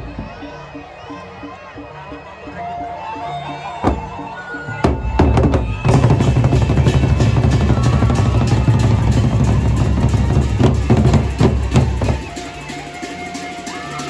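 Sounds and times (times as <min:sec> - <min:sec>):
group drumming on barrel drums: 0:04.9 - 0:12.4.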